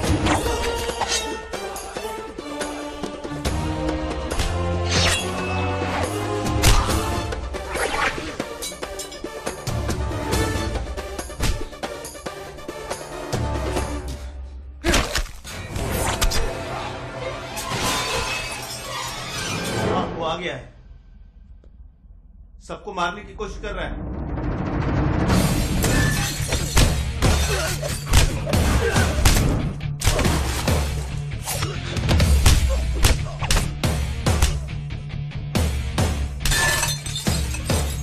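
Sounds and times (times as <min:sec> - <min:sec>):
film music: 0:00.0 - 0:38.0
crashing and shattering: 0:25.6 - 0:29.4, 0:36.4 - 0:38.0.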